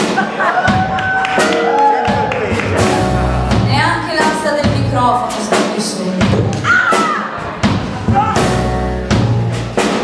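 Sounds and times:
drum kit hits: 0:00.0 - 0:10.0
live blues band: 0:00.0 - 0:10.0.

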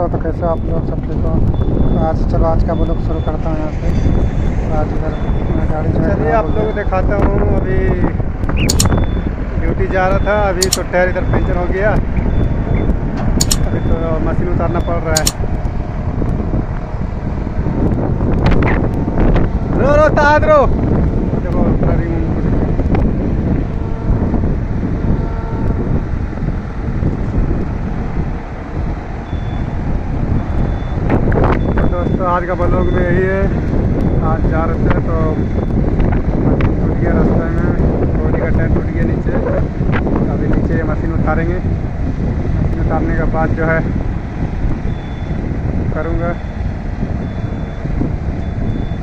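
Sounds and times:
highway vehicle noise: 0:00.0 - 0:49.0
wind buffeting microphone: 0:00.0 - 0:49.0.

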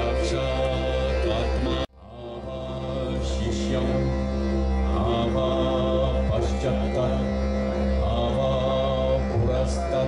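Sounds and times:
chanted voices: 0:00.0 - 0:10.0
sustained drone tones: 0:00.0 - 0:10.0.

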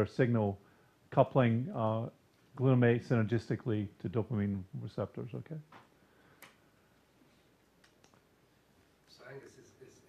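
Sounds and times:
faint clicks: 0:05.8 - 0:06.6.

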